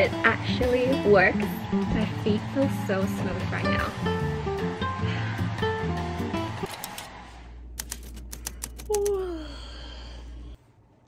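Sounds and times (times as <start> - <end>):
typewriter key clicks: 7.8 - 9.0
person yawning: 8.9 - 10.2.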